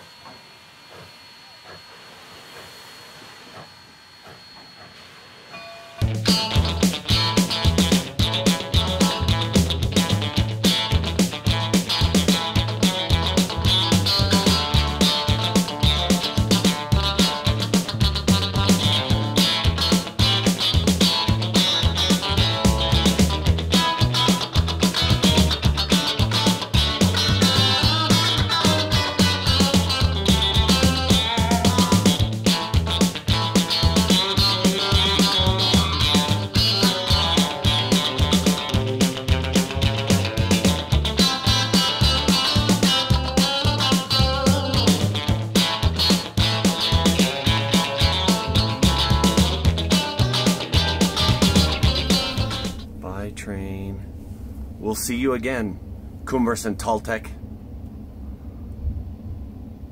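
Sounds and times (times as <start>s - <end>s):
steam locomotive hissing: 0.0s - 5.5s
music with guitar and beat: 6.0s - 52.9s.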